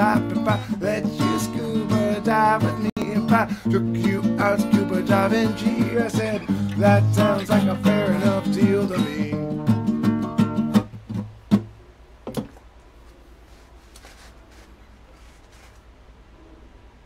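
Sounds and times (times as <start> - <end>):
acoustic guitar strumming: 0.0 - 11.7.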